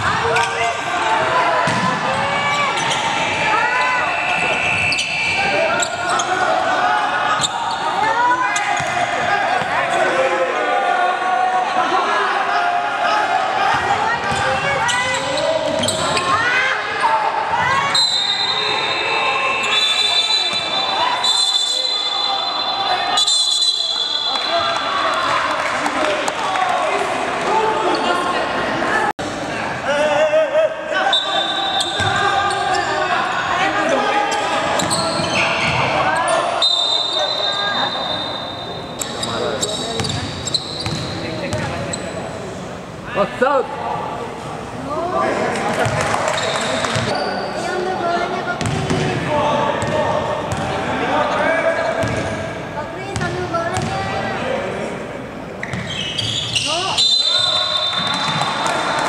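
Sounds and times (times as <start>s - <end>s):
players calling out: 0.0s - 54.4s
basketball bouncing on court: 40.0s - 41.8s, 45.8s - 46.1s, 48.6s - 49.1s, 52.0s - 52.3s, 53.2s - 54.0s.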